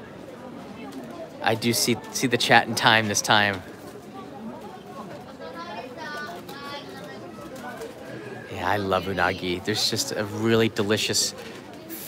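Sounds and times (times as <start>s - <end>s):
indistinct background chatter: 0.0s - 12.0s.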